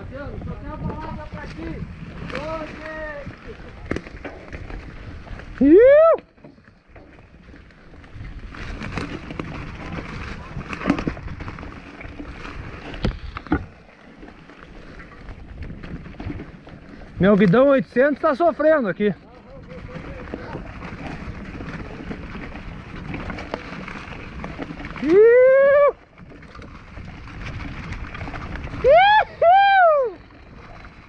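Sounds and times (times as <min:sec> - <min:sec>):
bike knocking and rattling: 0:00.0 - 0:31.0
bike tyres rushing on dirt: 0:00.0 - 0:31.0.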